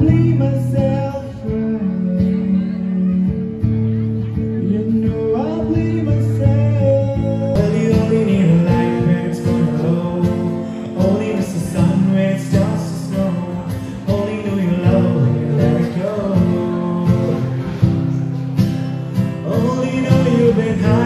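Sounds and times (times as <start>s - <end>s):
acoustic guitar strumming: 0.0s - 21.0s
man singing: 0.0s - 21.0s.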